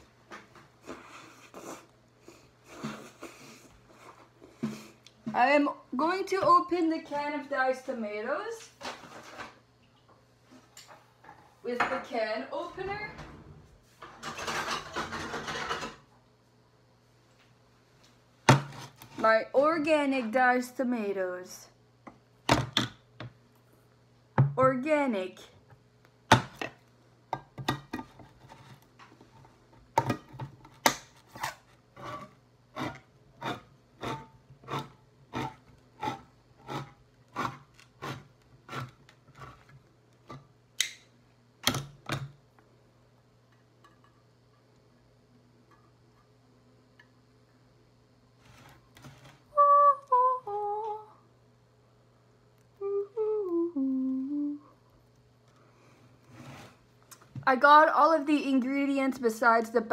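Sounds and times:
woman humming: 49.5 - 51.2, 52.8 - 54.8.

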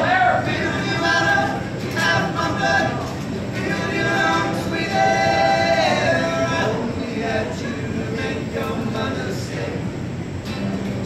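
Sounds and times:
men singing together: 0.0 - 10.1.

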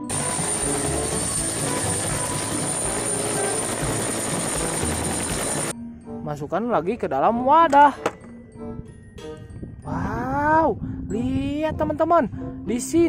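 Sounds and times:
helicopter noise with high whine: 0.0 - 5.7.

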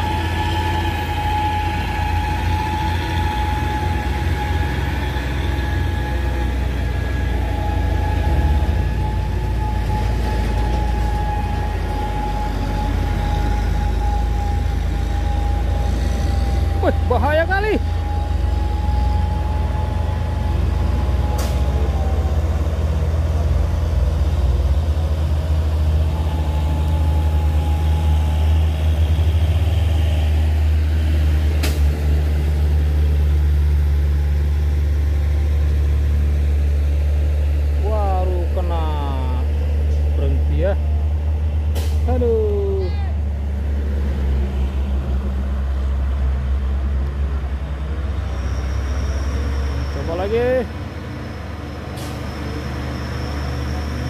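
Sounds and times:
diesel truck engine droning: 0.0 - 54.0.

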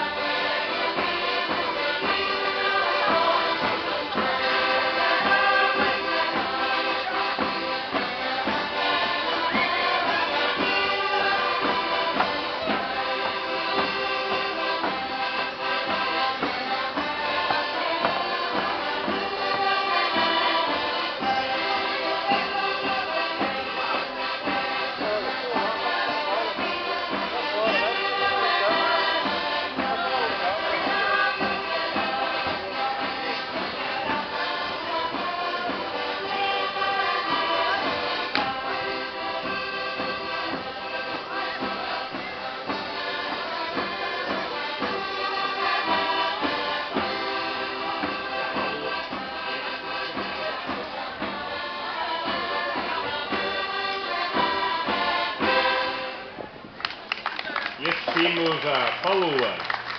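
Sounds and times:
voices singing along: 0.0 - 56.4
accordion: 0.0 - 59.9
folk dance music: 0.0 - 59.9.

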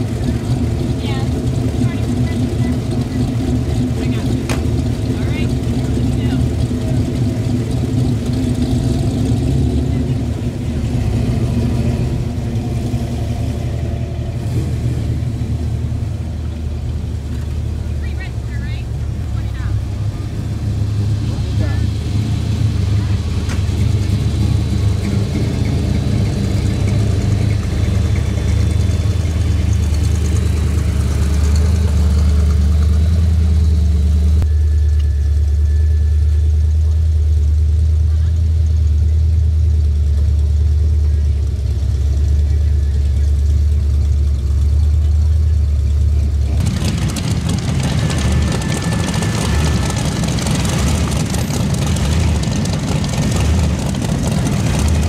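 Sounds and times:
people talking: 0.0 - 7.4, 9.7 - 10.6, 17.3 - 20.4, 21.2 - 22.0, 37.9 - 39.3, 42.3 - 43.8
car engines running at low speed: 0.0 - 55.0.

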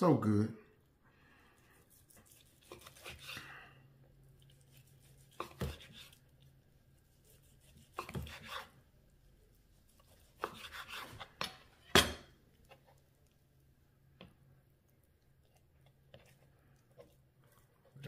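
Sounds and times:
knife slicing on wooden board: 1.9 - 3.4, 4.7 - 6.2, 7.2 - 8.8, 10.0 - 11.6.

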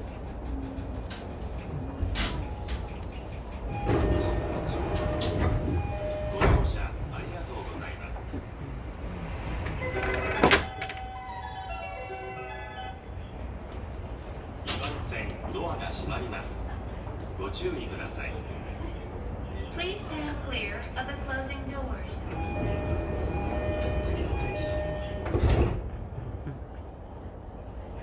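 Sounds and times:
train running hum: 0.0 - 28.0.

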